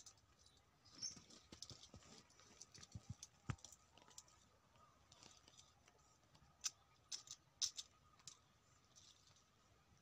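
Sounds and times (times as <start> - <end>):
leaves rustling and twigs snapping: 0.0 - 9.5.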